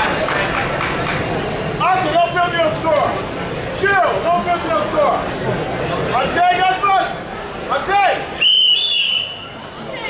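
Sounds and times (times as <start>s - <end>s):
referee's whistle blast: 8.4s - 9.5s.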